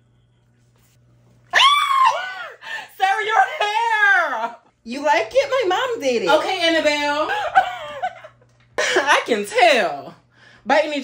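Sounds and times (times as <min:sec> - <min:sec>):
person squealing excitedly: 0:01.5 - 0:02.6.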